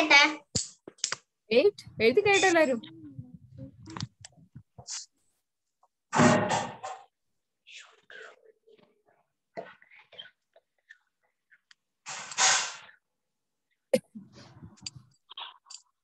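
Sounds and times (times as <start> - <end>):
faint small sounds: 0.4 - 6.0, 6.6 - 16.0
person whispering: 1.8 - 5.1, 7.6 - 8.9.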